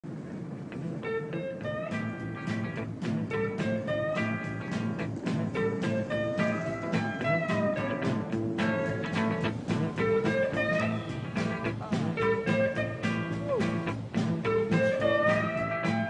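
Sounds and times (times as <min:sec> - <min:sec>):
plucked guitar notes sliding: 0:00.7 - 0:16.0
steady bass beat: 0:01.9 - 0:16.0.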